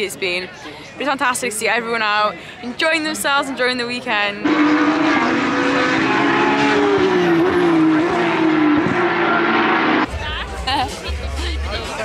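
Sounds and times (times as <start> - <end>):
racing car engines: 4.4 - 10.2.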